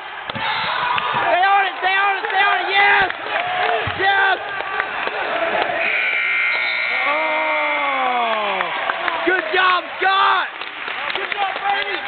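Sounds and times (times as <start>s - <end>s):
crowd shouting: 0.0s - 10.5s
spectator yelling: 0.4s - 4.6s, 6.9s - 10.6s
buzzer tone: 5.8s - 7.2s.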